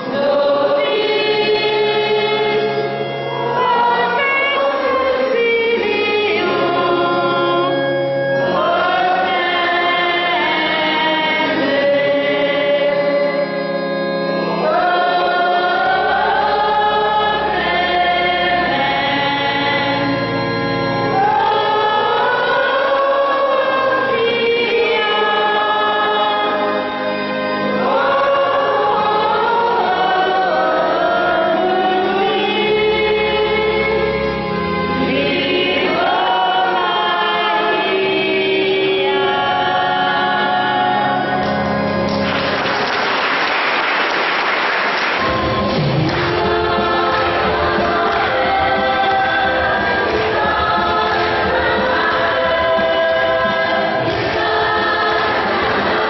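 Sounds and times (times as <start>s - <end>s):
choir singing a hymn: 0.0s - 42.7s, 45.2s - 56.0s
applause: 42.1s - 46.3s.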